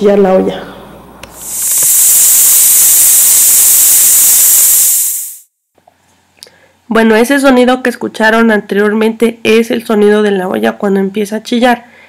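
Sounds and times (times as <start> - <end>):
pressure cooker valve hissing: 1.2 - 5.5.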